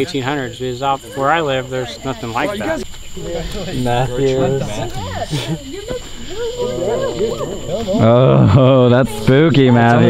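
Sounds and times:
night insects droning: 0:00.0 - 0:10.0
people talking: 0:00.0 - 0:10.0.

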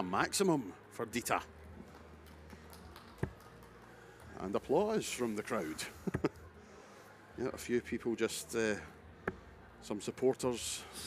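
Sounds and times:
faint scattered applause: 0:01.8 - 0:04.8.

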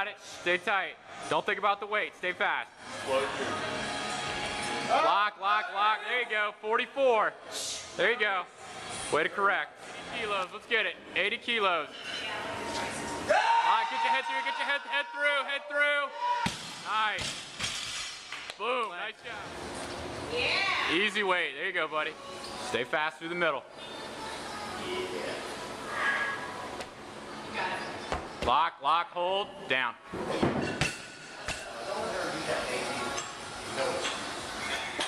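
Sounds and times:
people talking in gym: 0:00.0 - 0:35.0.

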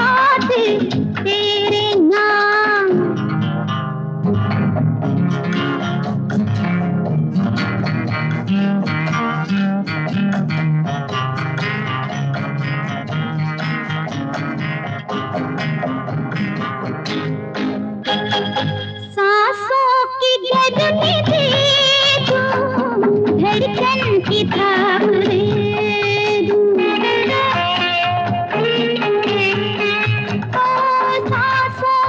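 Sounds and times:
bass guitar line: 0:00.0 - 0:19.2, 0:20.6 - 0:32.0
plucked guitar run: 0:00.0 - 0:32.0.

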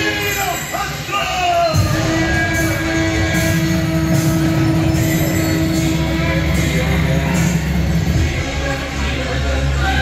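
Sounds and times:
droning music over loudspeaker: 0:00.0 - 0:10.0.

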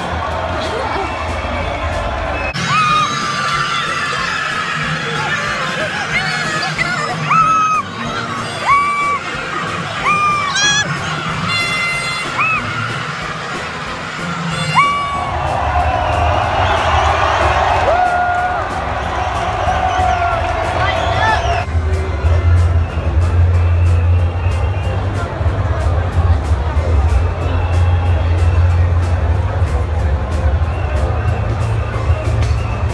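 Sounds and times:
crowd cheering and shouting: 0:00.0 - 0:32.9
short high held notes blown: 0:14.5 - 0:15.4.

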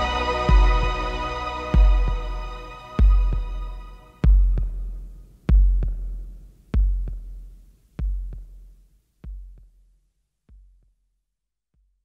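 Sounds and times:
held synth chord: 0:00.0 - 0:04.2
heartbeat-like double thumps: 0:00.0 - 0:08.6.

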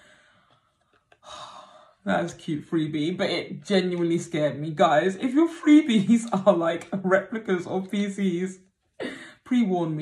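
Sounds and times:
woman sighing: 0:09.0 - 0:09.4.

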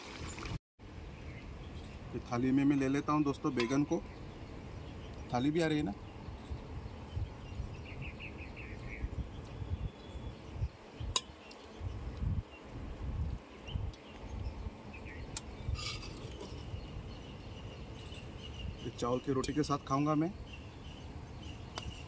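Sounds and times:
wind rumble on microphone: 0:03.9 - 0:19.0.

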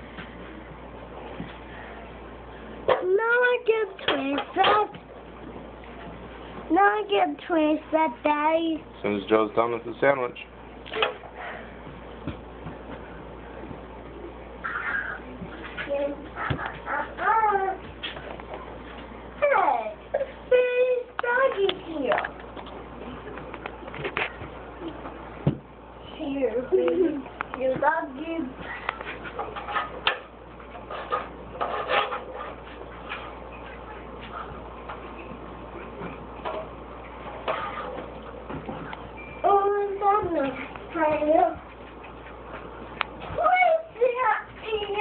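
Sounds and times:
low steady hum: 0:00.0 - 0:45.0.

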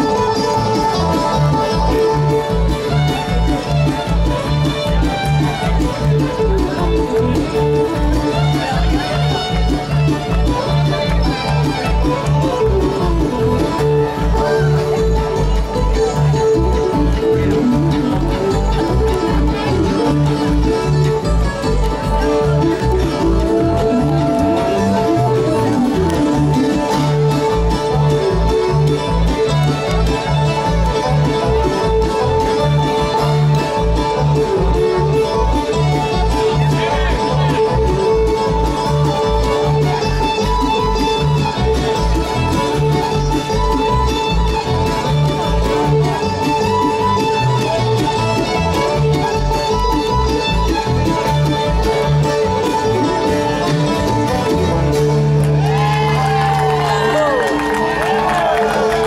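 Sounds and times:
bluegrass band playing: 0:00.0 - 0:59.0.

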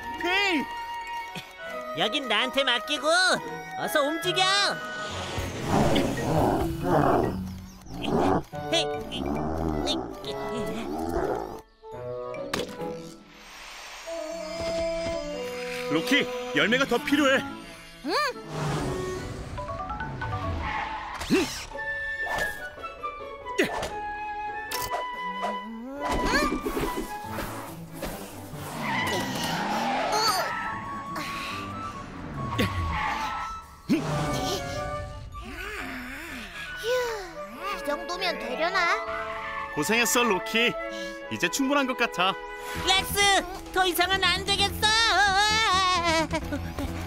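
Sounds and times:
background music: 0:00.0 - 0:47.0
cartoon dinosaur roaring: 0:05.6 - 0:08.5
cartoon tyres skidding: 0:18.4 - 0:21.9, 0:26.2 - 0:31.2, 0:31.8 - 0:34.6.

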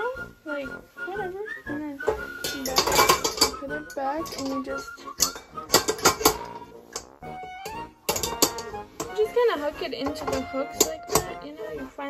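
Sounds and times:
metal bowl clanking against mixer: 0:02.1 - 0:06.6, 0:08.0 - 0:09.4, 0:10.0 - 0:11.5.

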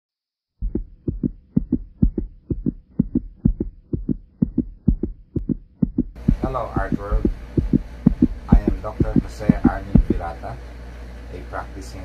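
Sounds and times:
heartbeat thumps: 0:00.6 - 0:10.4
faint steady hum: 0:00.6 - 0:12.0.

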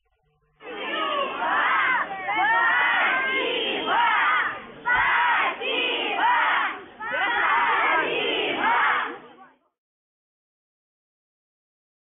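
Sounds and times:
children shouting together: 0:00.6 - 0:09.3.

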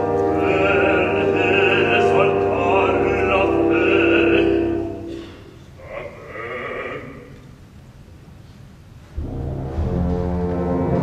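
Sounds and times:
operatic bass voice singing: 0:00.3 - 0:05.0, 0:05.8 - 0:07.4.

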